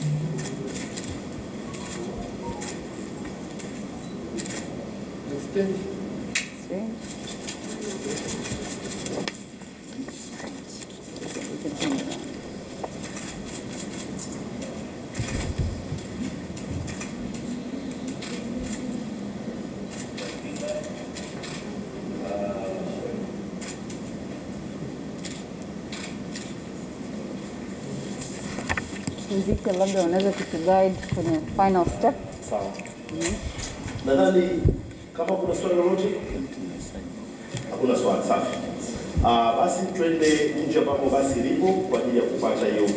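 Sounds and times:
low background chatter: 0.0 - 42.9.

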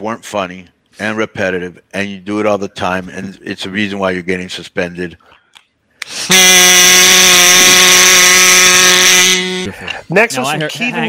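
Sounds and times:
loud electric buzzer: 6.3 - 9.7.

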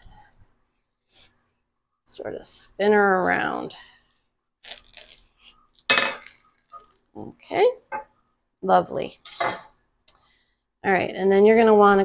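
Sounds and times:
knife clinking on stone countertop: 5.9 - 6.3.

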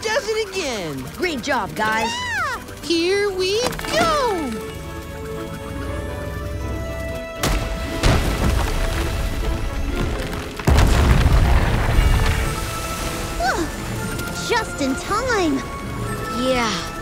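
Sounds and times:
background music: 0.0 - 17.0
deep rumbling booms: 10.6 - 12.8.

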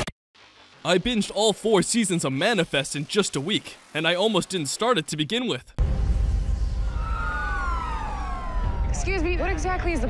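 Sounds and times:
low rumble: 5.8 - 10.0
police siren wailing: 6.8 - 9.7.

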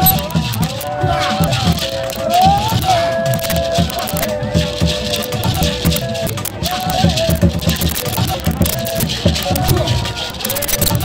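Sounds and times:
shaker rattling: 0.0 - 11.0
steady drum beat: 0.0 - 11.0.

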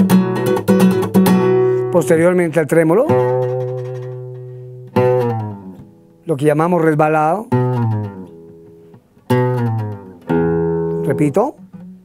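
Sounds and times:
classical guitar chords: 0.0 - 12.0.

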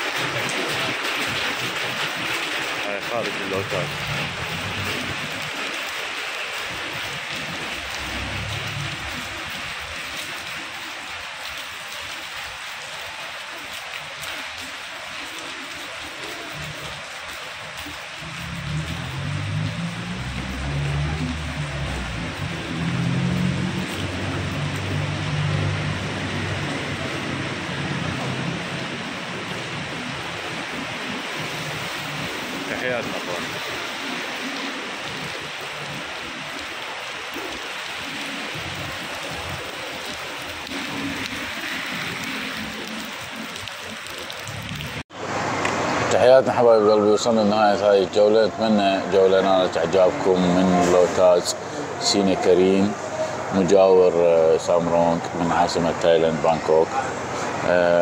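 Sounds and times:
rain falling on pavement: 0.0 - 58.0.

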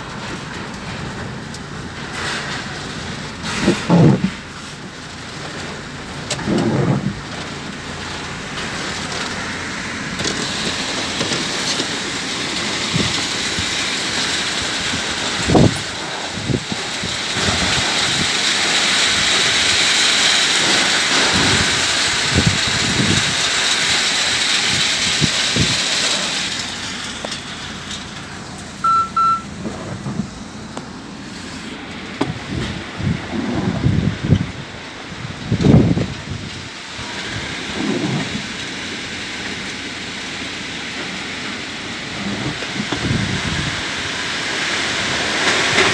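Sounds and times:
short beeps: 28.8 - 29.5
wind gusts rushing: 32.2 - 38.5.

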